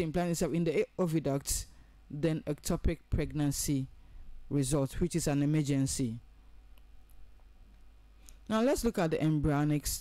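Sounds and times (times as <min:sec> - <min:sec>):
person's voice: 0:00.0 - 0:06.3, 0:08.4 - 0:10.0
low steady hum: 0:00.0 - 0:10.0.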